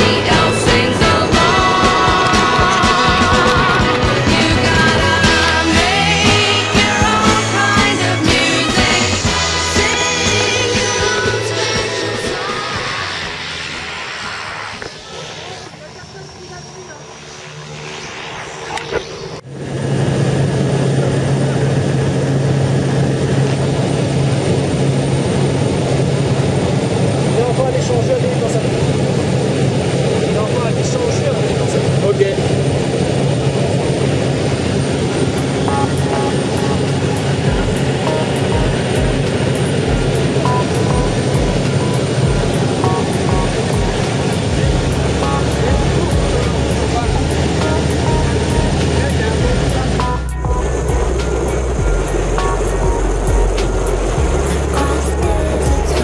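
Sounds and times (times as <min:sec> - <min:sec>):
airplane engine and propeller drone: 0:00.0 - 0:56.0.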